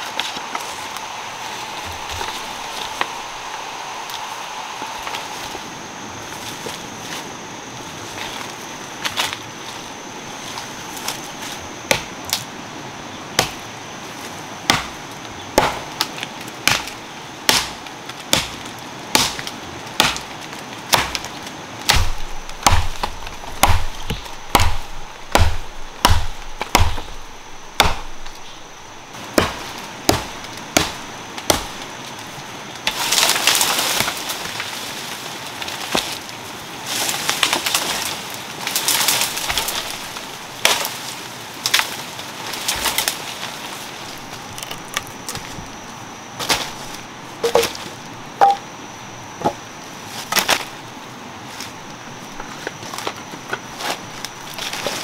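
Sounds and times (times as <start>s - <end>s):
leaves and branches crackling: 0.0s - 55.0s
machete chopping tree trunk: 11.9s - 12.1s, 13.4s - 13.6s, 14.7s - 15.0s, 15.6s - 20.3s, 20.9s - 28.4s, 29.3s - 31.8s, 47.4s - 47.8s.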